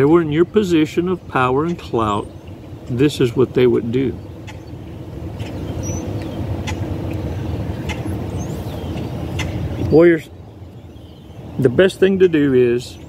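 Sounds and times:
vehicle engine rumble: 0:00.0 - 0:13.0.

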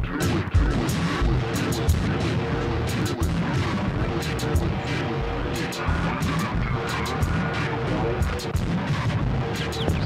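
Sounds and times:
experimental electronic ambient music: 0:00.0 - 0:10.0.

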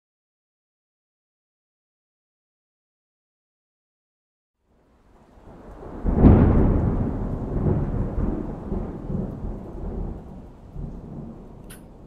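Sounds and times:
thunder crack and rumble: 0:05.2 - 0:12.0.

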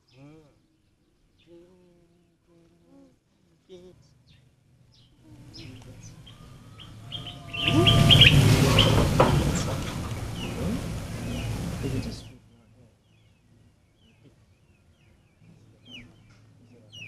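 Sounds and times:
outdoor background noise: 0:00.0 - 0:17.0
birds chirping: 0:03.8 - 0:17.0.

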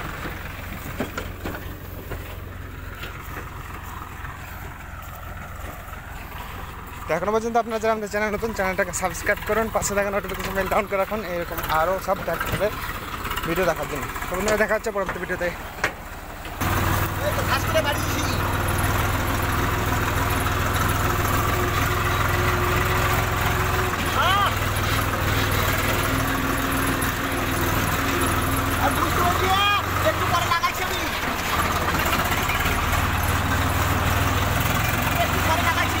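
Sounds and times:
tractor diesel engine running: 0:00.0 - 0:36.0.

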